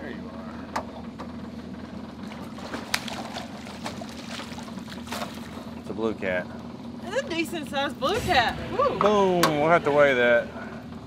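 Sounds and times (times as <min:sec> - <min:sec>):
steady low hum: 0:00.0 - 0:11.0
fish splashing at the surface: 0:02.2 - 0:05.8.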